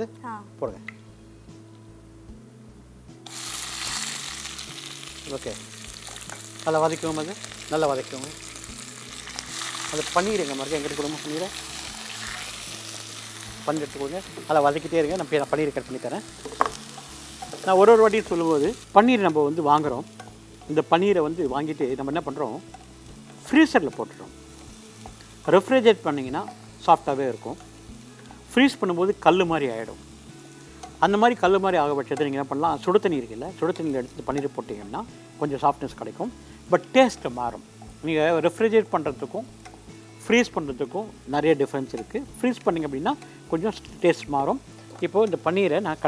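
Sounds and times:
food sizzling in hot fat: 3.2 - 46.0.

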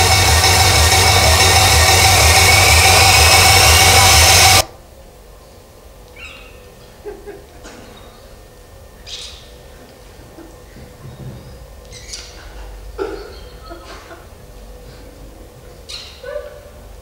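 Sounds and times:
film soundtrack with pulsing beat: 0.0 - 4.7
faint rising whine: 0.0 - 5.4
faint bird-like chirps: 6.2 - 6.7, 9.0 - 9.6.

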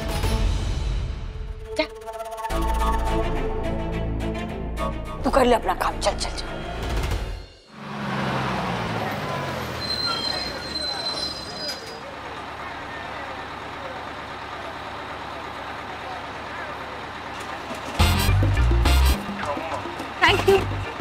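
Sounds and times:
bus engine running: 2.5 - 21.0
street noise: 5.2 - 21.0
brakes squealing: 7.7 - 18.2.

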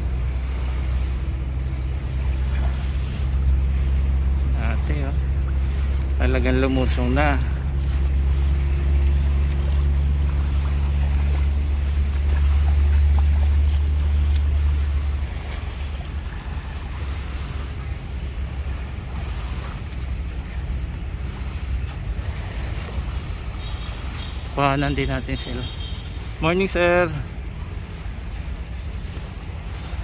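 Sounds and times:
shallow water: 0.0 - 30.0.

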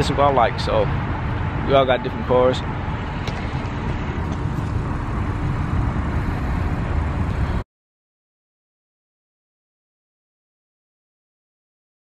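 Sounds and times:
car engine idling: 0.0 - 7.6.

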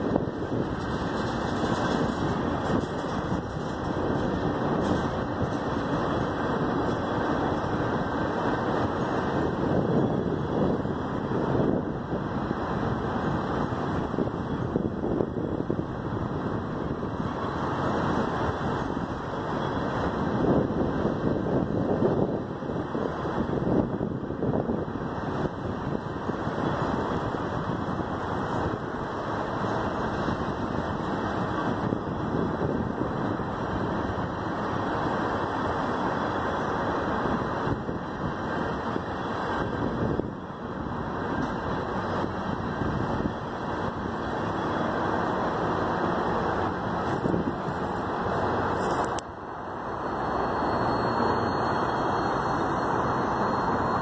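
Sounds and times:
freight train rolling past: 0.0 - 54.0.

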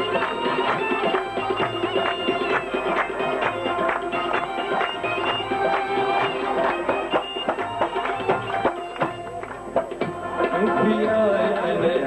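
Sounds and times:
harmonium held notes: 0.0 - 12.0
tabla strokes: 0.0 - 12.0
man singing: 10.5 - 12.0.

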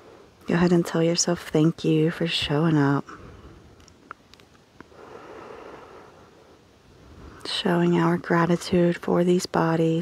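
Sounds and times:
soft breathing: 0.0 - 0.5, 3.0 - 3.9, 4.8 - 7.6.

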